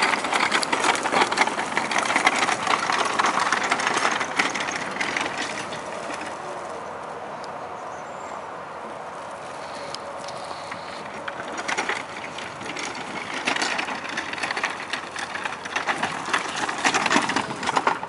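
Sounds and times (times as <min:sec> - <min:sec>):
hooves and footsteps on gravel: 0:00.0 - 0:18.0
wagon wheels crunching over gravel: 0:00.0 - 0:18.0.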